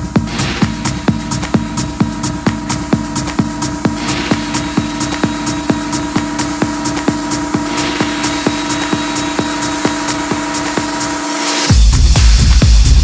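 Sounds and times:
kick drum beat: 0:00.0 - 0:13.0.

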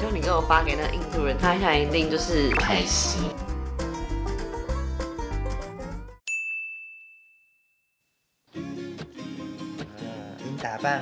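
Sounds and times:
background music: 0:00.0 - 0:06.2, 0:08.6 - 0:11.0.

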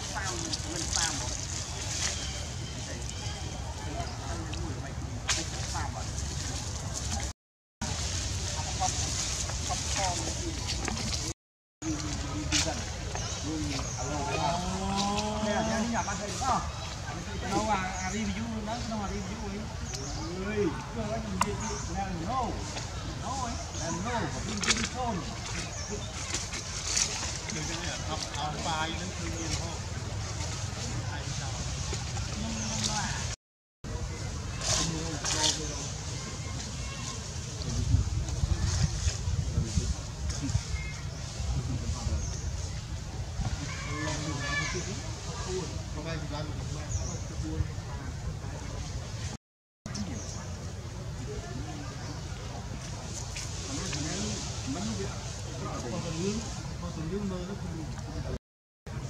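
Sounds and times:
outdoor background noise: 0:00.0 - 0:59.0
dry leaves crackling underfoot: 0:05.4 - 0:14.0.

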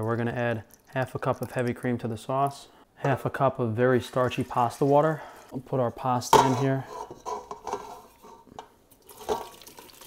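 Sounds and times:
light metal clinks of pots: 0:06.3 - 0:09.7.

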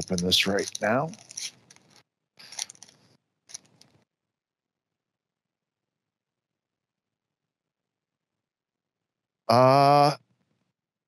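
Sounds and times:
paper wrapper tearing and crinkling: 0:00.0 - 0:02.9.

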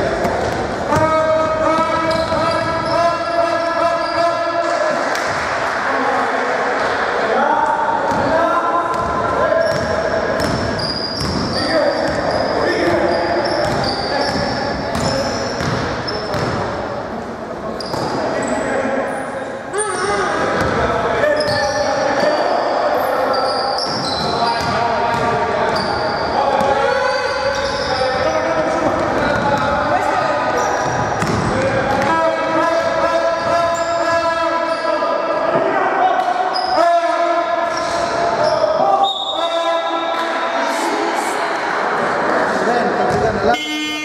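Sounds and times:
sneaker squeaks: 0:00.3 - 0:04.5, 0:08.9 - 0:16.7, 0:17.7 - 0:29.8, 0:30.6 - 0:32.0, 0:33.3 - 0:35.3, 0:36.2 - 0:40.8
basketball bouncing on wooden floor: 0:08.9 - 0:10.6, 0:13.6 - 0:16.6, 0:30.8 - 0:32.1.

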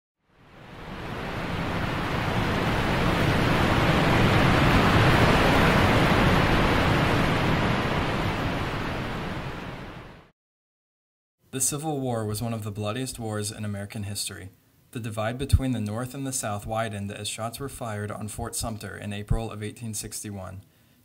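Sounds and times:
rushing water like surf: 0:00.4 - 0:10.3.

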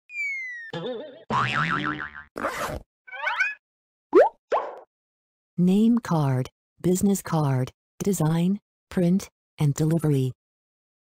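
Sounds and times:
falling whistle: 0:00.1 - 0:00.8.

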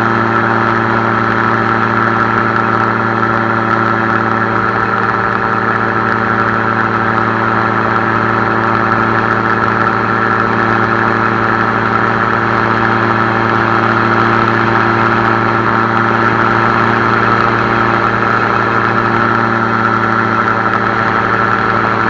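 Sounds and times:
gyroplane engine and propeller: 0:00.0 - 0:22.0.

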